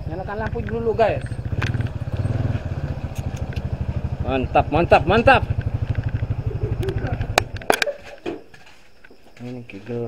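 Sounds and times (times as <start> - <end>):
motorcycle engine idling: 0.0 - 7.8
sharp clicks: 0.4 - 2.3, 3.0 - 3.8, 5.4 - 7.9.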